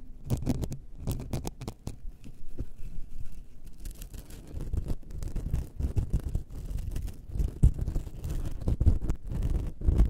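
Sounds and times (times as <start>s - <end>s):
scratching on object: 0.2s - 10.0s.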